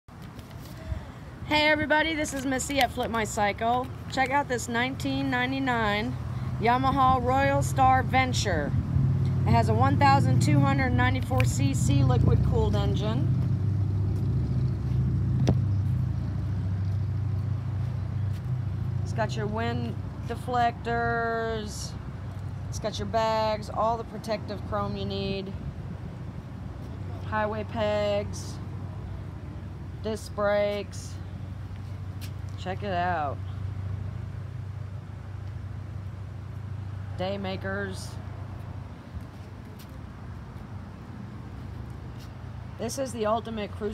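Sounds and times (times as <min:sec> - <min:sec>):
outdoor background hiss: 0:00.1 - 0:43.9
engine idling hum: 0:05.0 - 0:39.1.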